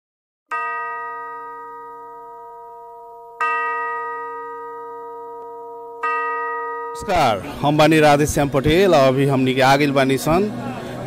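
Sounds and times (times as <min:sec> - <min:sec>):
bell-like chime ringing: 0:00.5 - 0:07.5.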